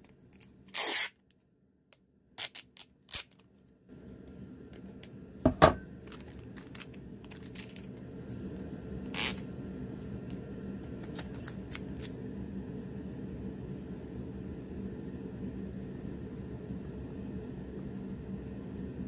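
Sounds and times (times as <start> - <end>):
packing tape crackling: 0.0 - 1.4, 2.4 - 3.6, 6.0 - 8.0, 9.0 - 9.4, 10.9 - 12.2
light crinkles of tape: 0.0 - 1.5, 2.4 - 3.7, 6.1 - 8.0, 10.9 - 12.2
steady low hum: 3.6 - 19.0.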